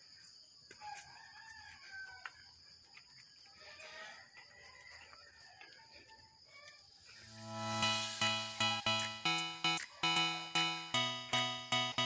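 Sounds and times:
distant rooster crowing: 0:00.8 - 0:02.5, 0:03.5 - 0:06.6.

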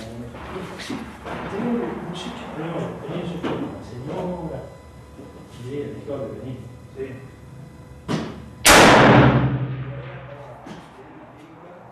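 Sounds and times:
rifle shot echoing: 0:08.6 - 0:10.4.

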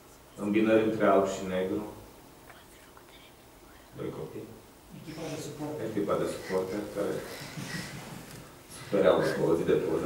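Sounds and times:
faint whispering voice: 0:02.4 - 0:04.2.

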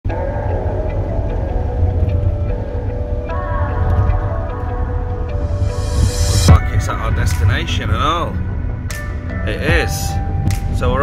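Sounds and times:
music of long held tones: 0:00.1 - 0:11.0.

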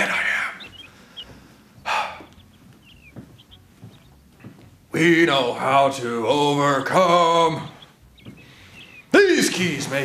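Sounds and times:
small birds chirping: 0:00.0 - 0:10.0.

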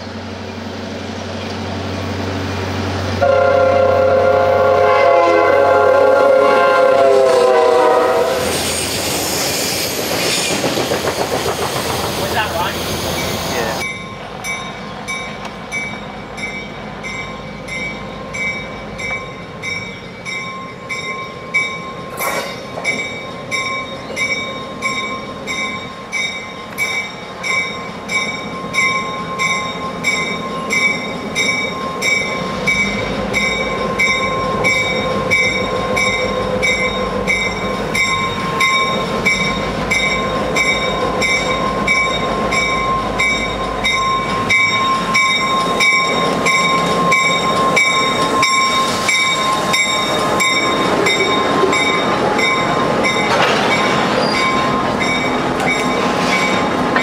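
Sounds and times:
diesel locomotive engine rumbling: 0:00.0 - 0:57.0
train wheels on rails: 0:00.0 - 0:57.0
locomotive bell ringing: 0:12.3 - 0:57.0.

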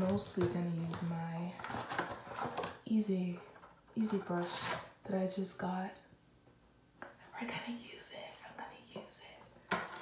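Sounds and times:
woman whispering excitedly: 0:07.3 - 0:09.4.

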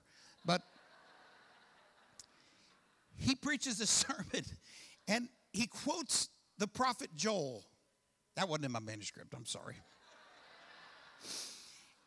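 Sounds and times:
sharp breath through nose: 0:11.2 - 0:12.0.

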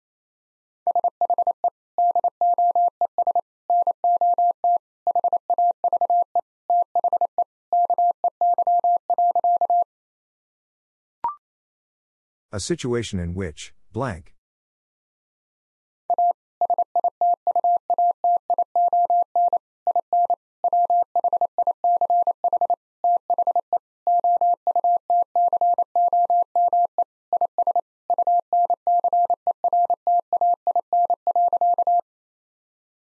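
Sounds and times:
morse code beeps: 0:00.9 - 0:09.9, 0:16.1 - 0:32.0.

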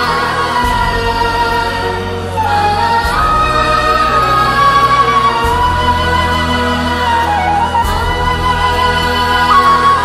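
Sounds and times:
choir singing sustained notes: 0:00.0 - 0:10.0
steady low bass: 0:00.0 - 0:10.0.

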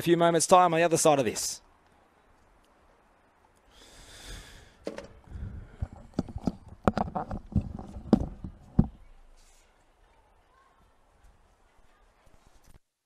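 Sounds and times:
sharp knocks and clicks: 0:06.0 - 0:09.0.

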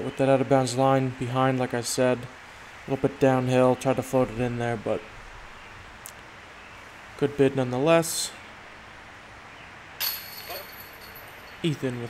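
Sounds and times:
metal chains jingling: 0:10.0 - 0:12.0.

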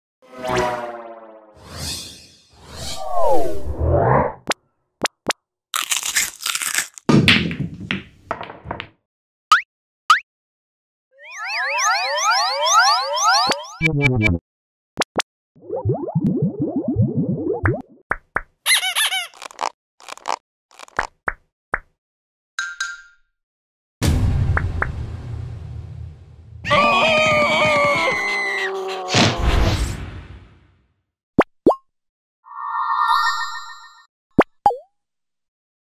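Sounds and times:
cartoon crunching and crumpling: 0:05.8 - 0:07.1, 0:18.7 - 0:21.2.

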